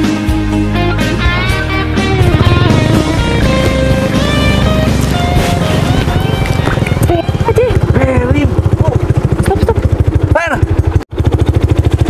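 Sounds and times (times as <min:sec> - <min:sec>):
scooter engine running: 0:01.0 - 0:12.0.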